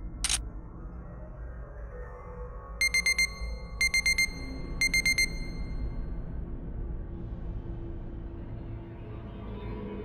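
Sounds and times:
low ambient music drone: 0.0 - 10.0
electronic alarm beeps: 2.8 - 6.0.

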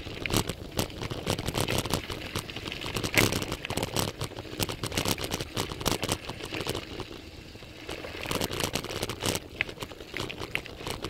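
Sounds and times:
bike rattles and knocks: 0.0 - 11.0.

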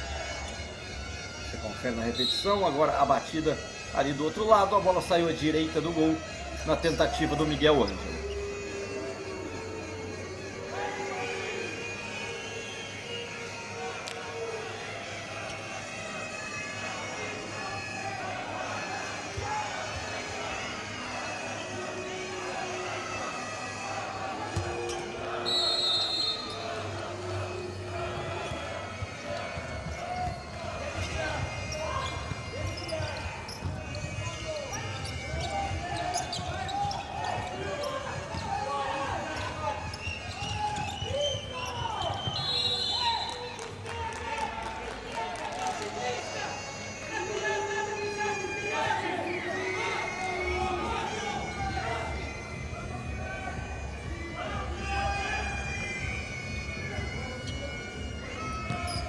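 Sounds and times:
crowd noise: 0.0 - 59.0
players shouting: 0.0 - 59.0
referee's whistle blasts: 0.1 - 8.7, 18.7 - 43.6, 45.9 - 59.0.

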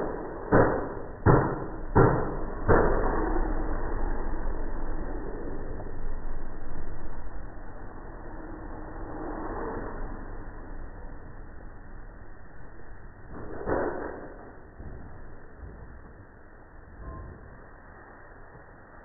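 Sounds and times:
dull steady noise: 0.0 - 19.0.

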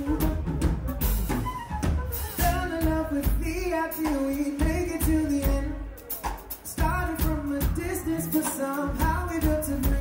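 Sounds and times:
live funk band playing: 0.0 - 10.0
man singing: 2.4 - 10.0.

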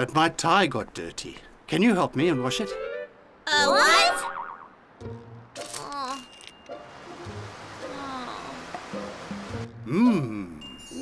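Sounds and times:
light background music: 1.7 - 4.3, 4.9 - 11.0.

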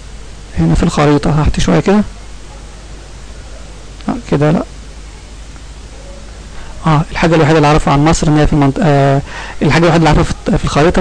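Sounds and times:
microphone hiss: 0.0 - 11.0
man speaking: 0.5 - 2.1, 4.0 - 4.7, 6.8 - 11.0.

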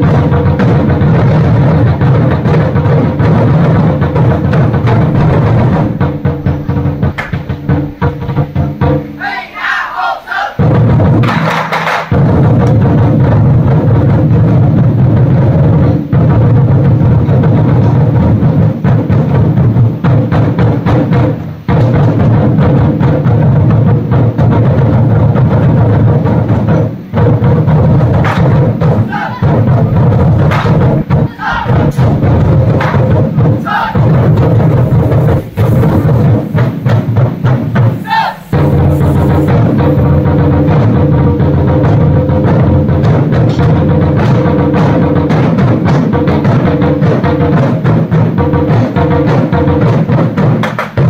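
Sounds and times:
barrel drums rolling: 0.0 - 9.3, 10.6 - 51.0.

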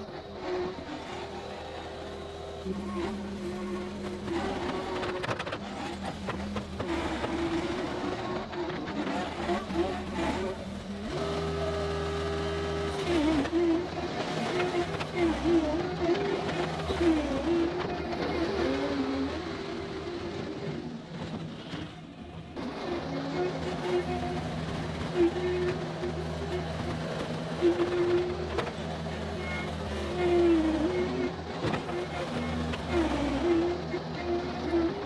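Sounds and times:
loader diesel engine running: 0.0 - 35.0.

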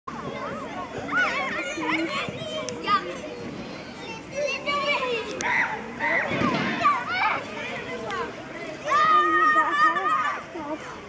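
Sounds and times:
children shouting while playing: 0.3 - 3.1, 4.0 - 11.0.

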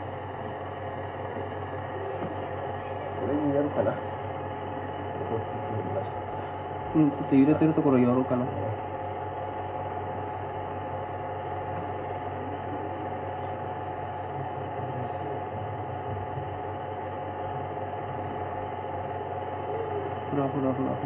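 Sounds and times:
steady droning hum: 0.0 - 21.0.

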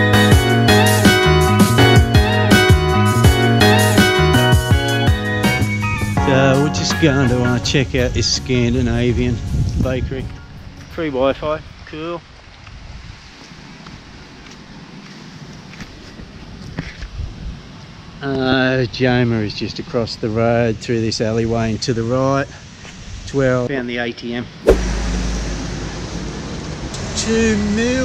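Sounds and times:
wind buffeting microphone: 7.7 - 13.4
steady low rumble: 24.7 - 26.8.

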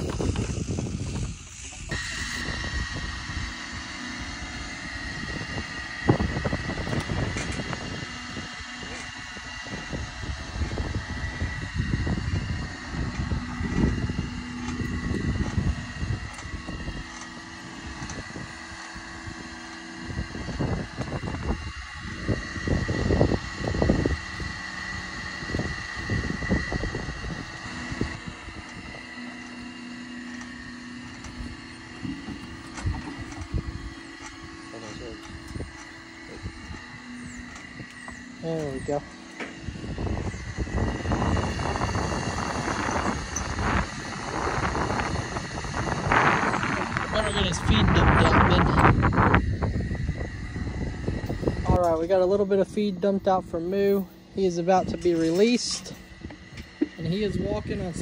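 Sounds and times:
low thumps and rumbles: 0.0 - 3.5, 4.5 - 29.6, 30.2 - 58.0
motor whining and humming: 0.0 - 58.0.

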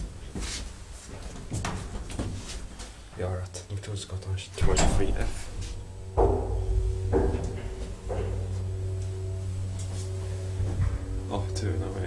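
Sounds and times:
elevator hum and whine: 4.4 - 12.0.

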